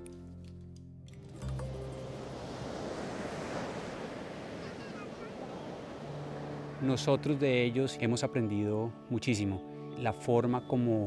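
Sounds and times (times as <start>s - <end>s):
soft background music: 0.0s - 3.8s, 5.6s - 11.0s
steady rushing noise: 1.9s - 7.6s.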